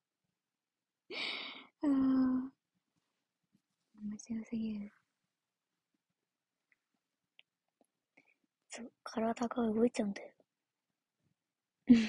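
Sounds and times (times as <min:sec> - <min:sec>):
young woman talking: 0:01.8 - 0:02.5, 0:04.0 - 0:04.9.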